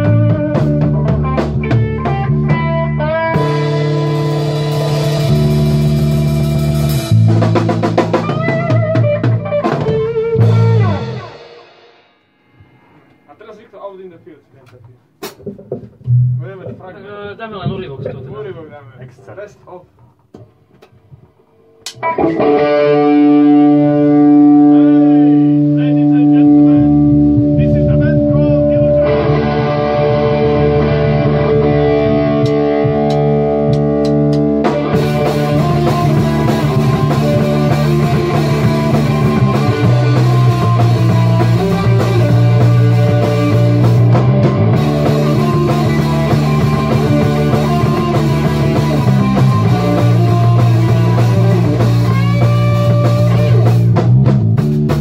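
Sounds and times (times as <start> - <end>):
drums and cymbals: 0.0 - 13.4, 15.1 - 16.8, 32.2 - 55.0
rock band playing: 0.0 - 13.6, 21.8 - 55.0.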